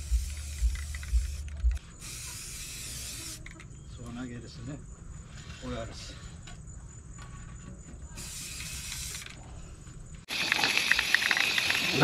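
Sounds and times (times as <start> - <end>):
spray paint can hissing: 0.0 - 3.6, 8.2 - 9.3.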